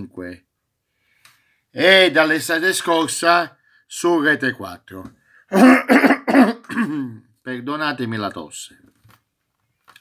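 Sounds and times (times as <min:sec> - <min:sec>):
man coughing into hand: 0:05.5 - 0:07.2.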